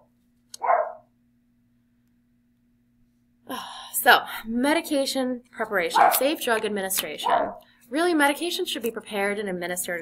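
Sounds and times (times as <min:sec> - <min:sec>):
dog barking: 0:00.6 - 0:01.1, 0:06.0 - 0:06.3, 0:07.2 - 0:07.6.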